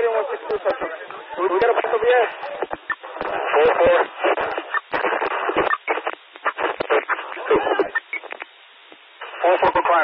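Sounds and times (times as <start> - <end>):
police radio voice transmissions: 0.0 - 4.8
faint radio hiss: 0.0 - 10.0
radio clicks: 0.4 - 9.4.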